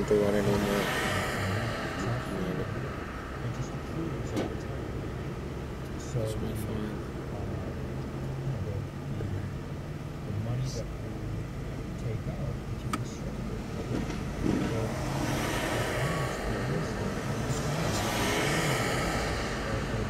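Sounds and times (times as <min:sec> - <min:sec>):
car engine idling: 0:00.0 - 0:20.0
cross traffic passing: 0:00.0 - 0:20.0.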